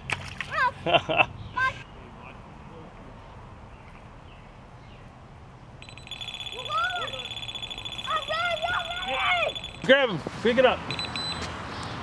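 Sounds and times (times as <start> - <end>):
bite alarm beeping: 5.8 - 10.0, 10.9 - 11.4.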